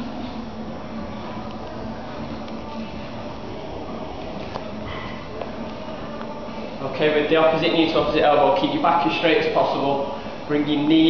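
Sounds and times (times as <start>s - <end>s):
faint background music: 0.0s - 11.0s
room noise: 0.0s - 11.0s.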